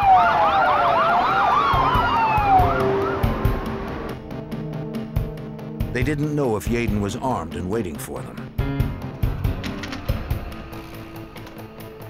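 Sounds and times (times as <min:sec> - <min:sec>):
police siren yelp: 0:00.0 - 0:03.9
falling siren tone: 0:00.0 - 0:04.2.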